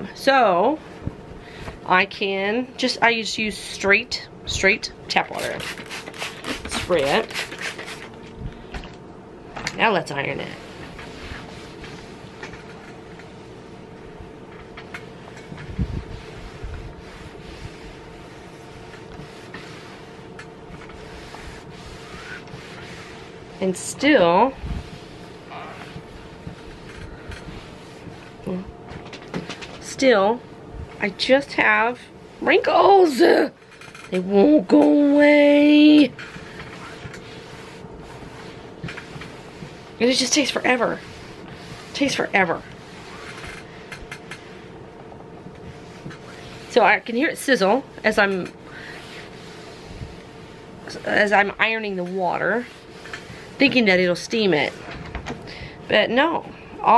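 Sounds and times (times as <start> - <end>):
steady hum: 0.0 - 56.9
iron swishing on damp fabric: 5.2 - 8.1, 10.5 - 12.7, 15.2 - 26.9, 34.4 - 43.6, 45.6 - 54.8.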